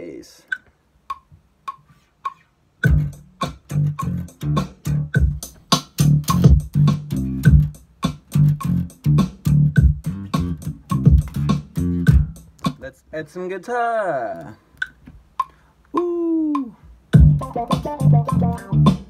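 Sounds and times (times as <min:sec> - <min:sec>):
drum beat: 0:02.8 - 0:12.8, 0:16.6 - 0:19.0
funk bass guitar line: 0:02.8 - 0:12.8, 0:17.2 - 0:19.0.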